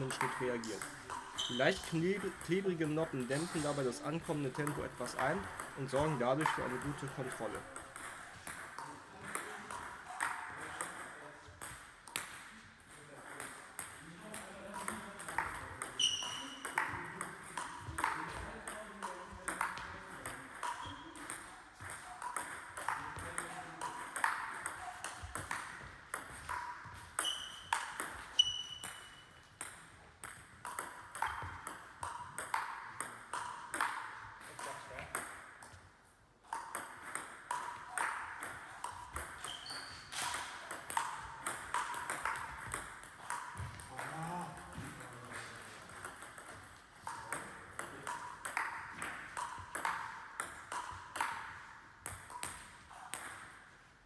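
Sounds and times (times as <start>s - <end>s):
table tennis ball clicking: 45.9s - 53.4s.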